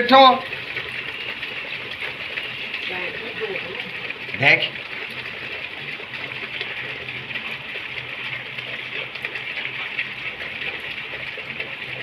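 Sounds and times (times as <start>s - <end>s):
rain falling on standing water: 0.0s - 12.0s.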